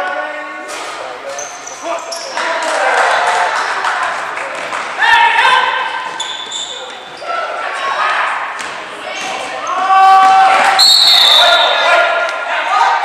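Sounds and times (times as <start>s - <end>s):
shoes squeaking: 1.3s - 2.5s, 6.0s - 7.6s
high whistle: 10.8s - 11.9s.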